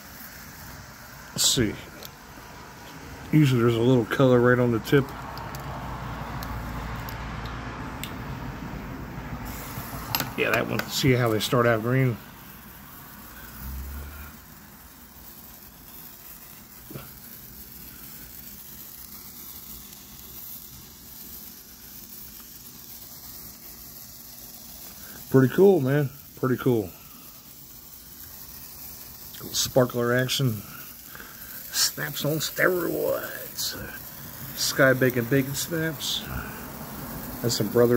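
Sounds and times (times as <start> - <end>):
lighter flame hissing: 0.0 - 37.9.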